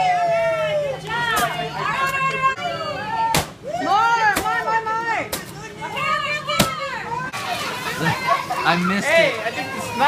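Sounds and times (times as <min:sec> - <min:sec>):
stick whacking pinata: 0:03.3 - 0:03.6
children shouting and squealing: 0:05.7 - 0:10.0.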